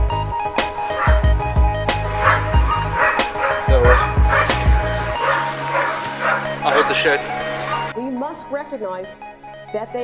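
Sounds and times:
background music with pulsing beat: 0:00.0 - 0:08.0
dog barking: 0:00.9 - 0:01.3, 0:02.1 - 0:08.0.

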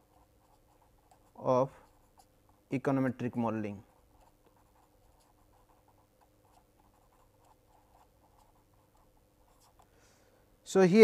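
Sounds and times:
marker pen scratching on paper: 0:00.0 - 0:02.7, 0:03.6 - 0:09.9.

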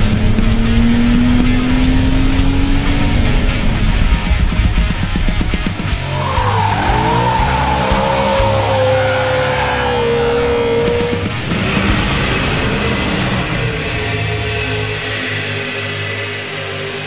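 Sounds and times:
loud rock music: 0:00.0 - 0:17.0
car tyres squealing: 0:06.0 - 0:13.7.

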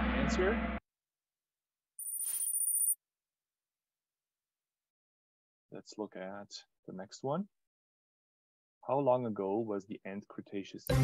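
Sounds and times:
high-pitched electronic ringing tone: 0:02.0 - 0:03.0.

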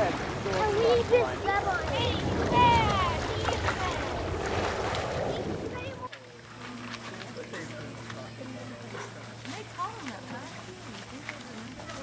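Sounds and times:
wind rumbling on microphone: 0:00.0 - 0:06.0
light water noise: 0:00.0 - 0:12.0
children calling and shouting: 0:00.4 - 0:04.5, 0:05.1 - 0:12.0.

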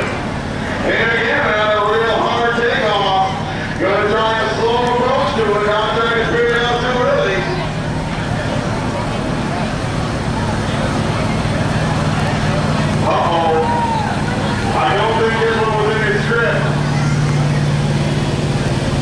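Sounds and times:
truck engine droning under load: 0:00.0 - 0:19.0.

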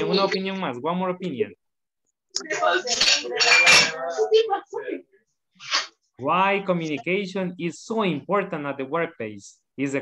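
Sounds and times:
dishes and cutlery clinking: 0:02.4 - 0:04.3.

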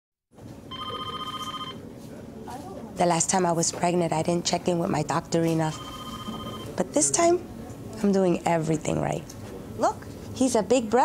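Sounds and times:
telephone electronic ring: 0:00.7 - 0:01.8, 0:05.7 - 0:06.8.

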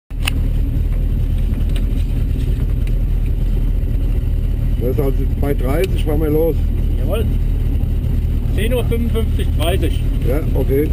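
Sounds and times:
car engine idling inside cabin: 0:00.1 - 0:10.9.

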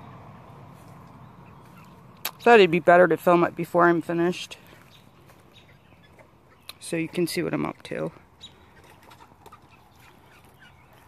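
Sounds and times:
faint poultry calls: 0:00.7 - 0:02.2, 0:04.4 - 0:06.9, 0:07.7 - 0:11.0.

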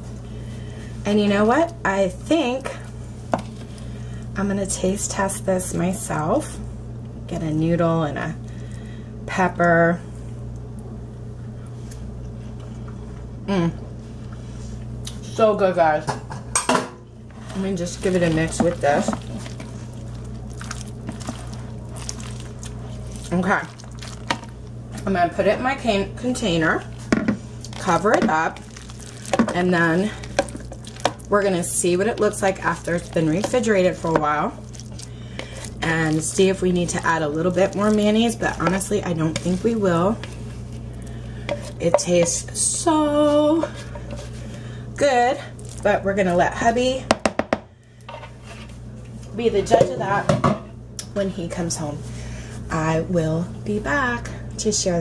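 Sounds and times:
faint room hum: 0:00.0 - 0:55.0
soft wet stirring: 0:17.2 - 0:25.2, 0:25.8 - 0:44.8.

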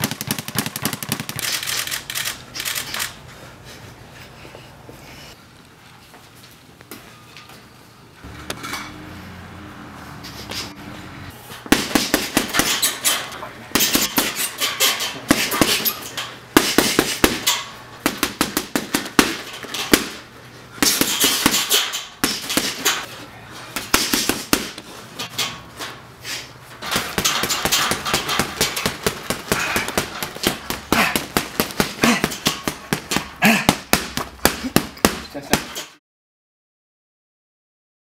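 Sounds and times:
gloved punches hitting heavy bag: 0:00.0 - 0:01.5, 0:11.7 - 0:12.9, 0:13.7 - 0:14.4, 0:15.2 - 0:15.9, 0:16.5 - 0:20.2, 0:20.8 - 0:23.0, 0:23.8 - 0:24.8, 0:26.9 - 0:35.9.

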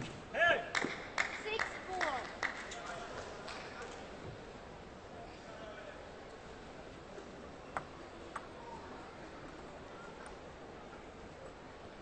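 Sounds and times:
faint steady background noise: 0:00.0 - 0:12.0.

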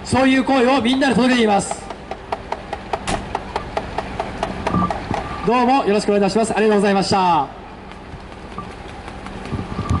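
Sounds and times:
street traffic: 0:00.0 - 0:10.0
vehicle engine running: 0:00.0 - 0:10.0.

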